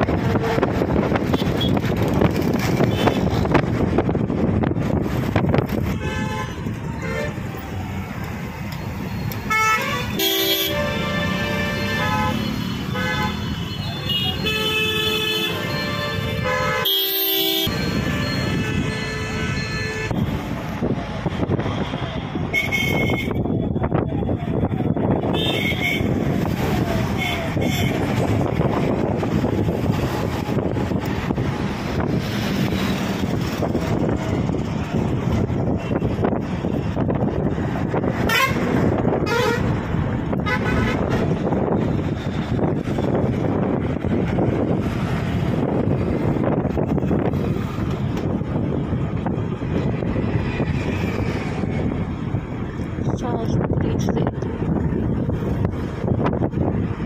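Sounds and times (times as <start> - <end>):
road traffic: 0.0 - 57.0
vehicle horn toots: 9.5 - 20.2, 22.5 - 23.4, 38.2 - 39.7.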